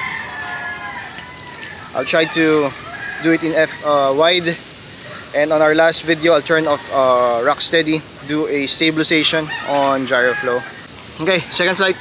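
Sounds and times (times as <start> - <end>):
rooster crowing: 0.0 - 4.5, 6.2 - 7.5, 9.2 - 10.9.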